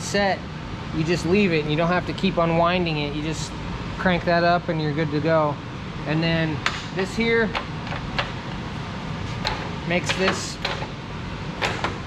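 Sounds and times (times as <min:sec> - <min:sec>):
low shop hum: 0:00.0 - 0:12.0
metal hardware clicks: 0:09.3 - 0:10.9.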